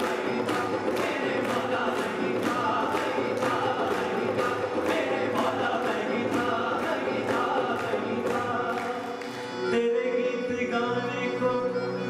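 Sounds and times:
percussion beat: 0.0s - 9.4s
voices singing together: 0.0s - 10.0s
harmonium: 0.0s - 12.0s
keyboard: 0.0s - 12.0s.

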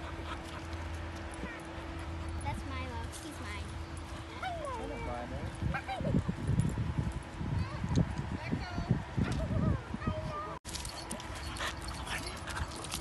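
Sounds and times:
dogs whining and yipping: 10.8s - 13.0s.

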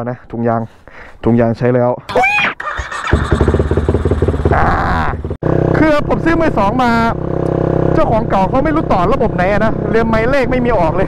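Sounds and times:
motorcycle engine running: 2.9s - 11.0s.

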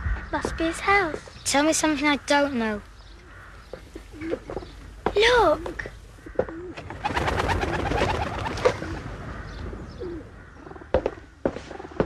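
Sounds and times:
pigeon wings flapping: 6.8s - 9.0s.

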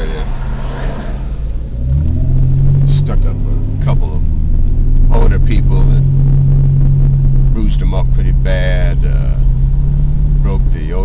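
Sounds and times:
car engine from inside cabin: 0.0s - 11.0s.

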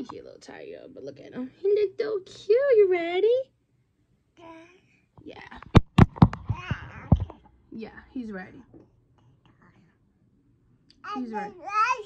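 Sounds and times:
faint breathy sounds: 9.1s - 10.4s.

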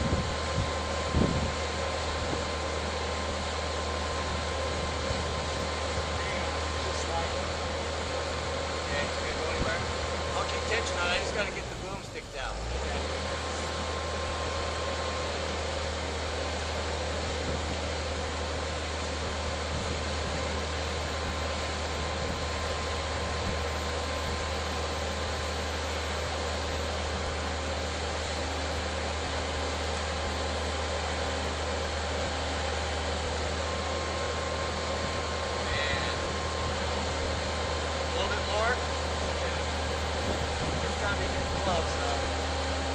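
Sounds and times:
machine engine running: 0.0s - 42.9s.

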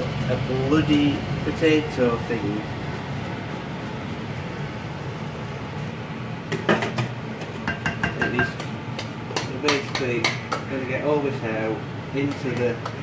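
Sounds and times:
utensil knocking on metal saucepan: 6.5s - 10.7s.

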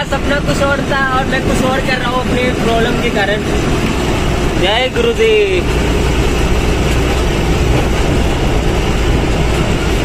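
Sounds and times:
truck engine and road drone: 0.0s - 10.0s.

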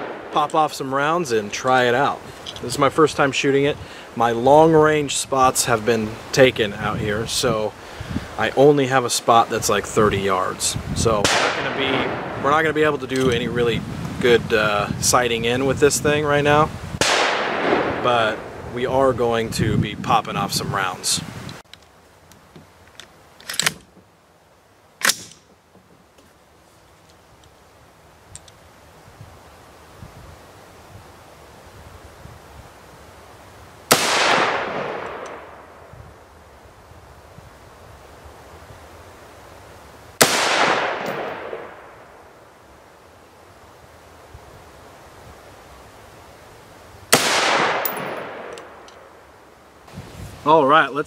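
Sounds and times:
rifle shots with echo: 0.0s - 0.5s, 11.2s - 12.4s, 17.0s - 18.5s, 33.9s - 35.8s, 40.2s - 42.2s, 47.1s - 49.1s
sharp clicks: 47.6s - 49.0s.

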